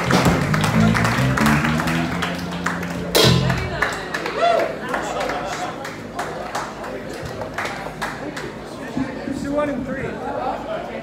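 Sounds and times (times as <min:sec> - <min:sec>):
live band playing: 0:00.0 - 0:04.0.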